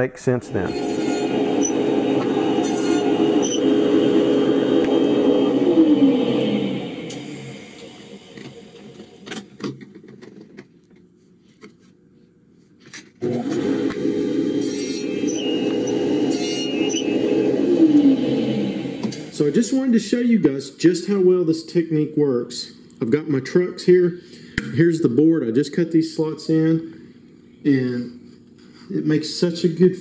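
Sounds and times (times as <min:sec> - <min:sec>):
table saw running and winding down: 0:00.6 - 0:09.4, 0:13.2 - 0:19.9.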